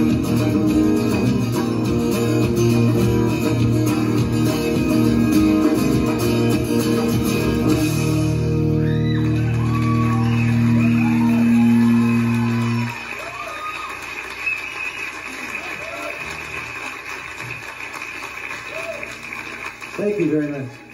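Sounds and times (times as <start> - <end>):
band chord on guitars: 0.0 - 8.8
audience applauding and cheering: 0.0 - 20.9
people whooping: 8.6 - 17.0, 18.6 - 19.3.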